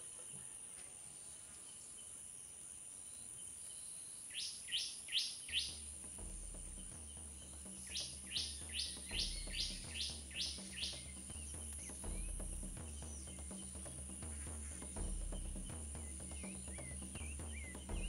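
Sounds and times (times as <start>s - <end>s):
crickets droning: 0.0s - 18.0s
bird chirping: 0.1s - 18.0s
low bass line: 5.8s - 18.0s.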